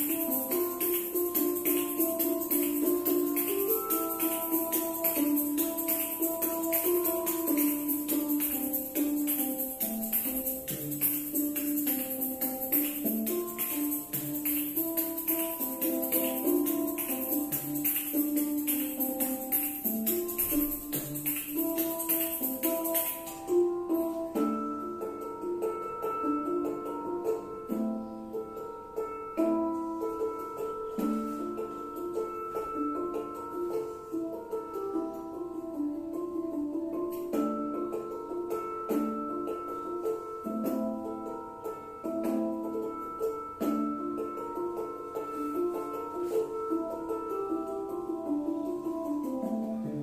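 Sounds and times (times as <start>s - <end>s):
instrumental background music: 0.0s - 50.0s.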